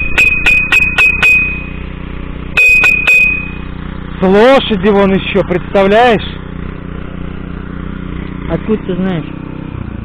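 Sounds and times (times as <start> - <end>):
horseshoe clanking on metal post: 0.0 - 1.9
tractor engine running: 0.0 - 10.0.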